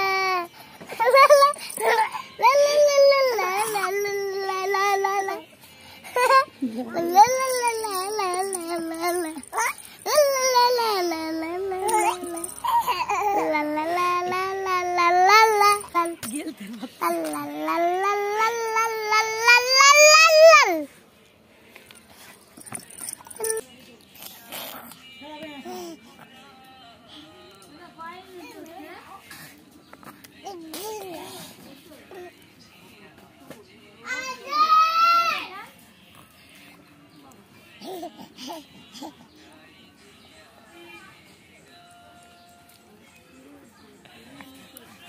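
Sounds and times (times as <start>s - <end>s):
baby vocalizing: 7.0s - 16.2s.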